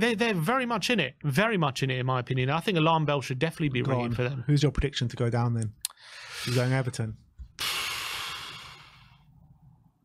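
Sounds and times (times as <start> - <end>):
man sighing: 7.6 - 9.2.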